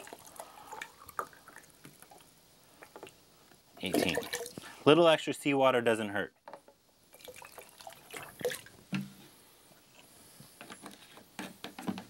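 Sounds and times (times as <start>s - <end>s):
water trickling into cup: 0.0s - 3.1s, 3.8s - 4.6s, 7.1s - 8.7s
water drips and ticks: 0.0s - 4.7s.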